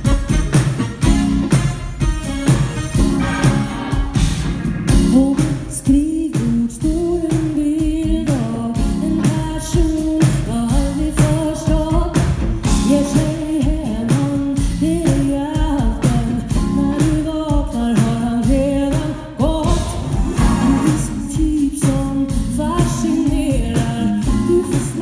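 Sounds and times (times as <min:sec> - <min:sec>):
live funk band playing: 0:00.0 - 0:25.0
woman singing: 0:04.9 - 0:25.0.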